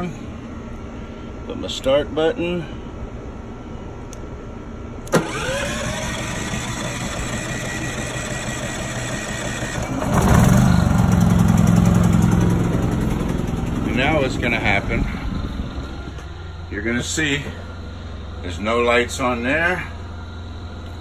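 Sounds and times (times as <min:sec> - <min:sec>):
generator engine running: 0:05.0 - 0:21.0.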